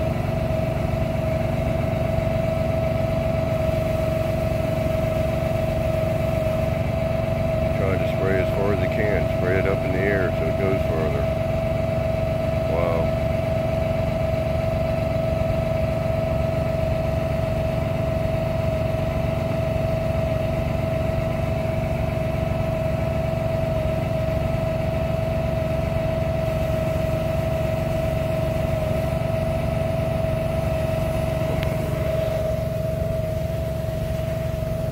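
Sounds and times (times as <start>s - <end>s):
engine running with whine: 0.0s - 34.9s.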